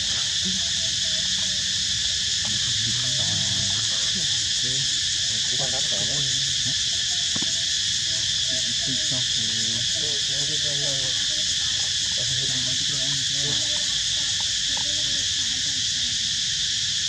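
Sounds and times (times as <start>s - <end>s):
faint voices: 0.0s - 16.5s
high-pitched insect chorus: 0.0s - 17.0s.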